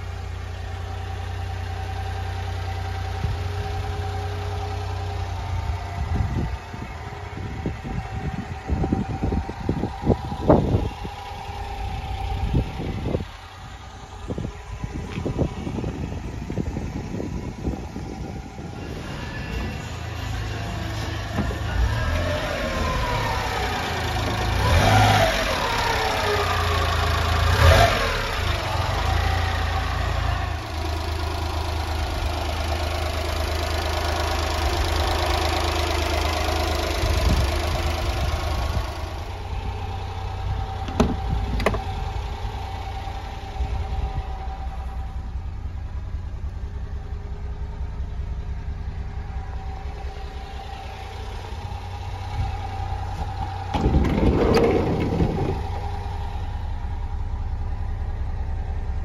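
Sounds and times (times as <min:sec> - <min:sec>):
van engine idling: 0:00.0 - 0:59.0.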